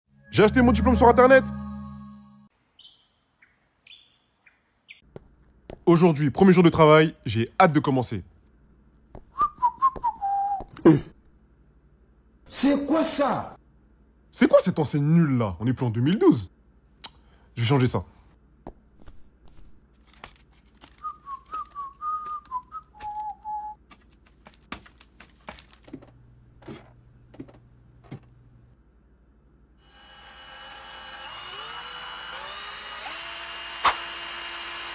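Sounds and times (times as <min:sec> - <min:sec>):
music chord: 0:00.1 - 0:02.5
high bird chirps: 0:02.8 - 0:05.1
person whistling a tune: 0:09.4 - 0:10.8, 0:21.0 - 0:23.8.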